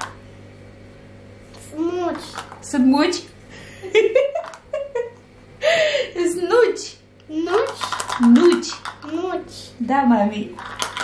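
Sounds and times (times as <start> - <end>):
child talking: 1.6 - 2.4, 7.3 - 7.9, 9.0 - 9.8
woman talking: 2.6 - 3.3, 6.2 - 7.0, 8.2 - 8.9, 9.8 - 10.6.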